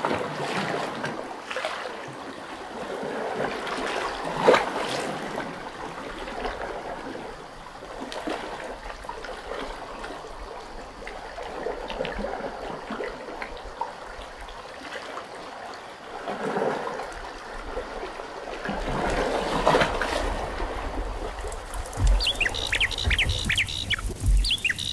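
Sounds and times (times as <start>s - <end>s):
water trickling and splashing: 0.0s - 24.9s.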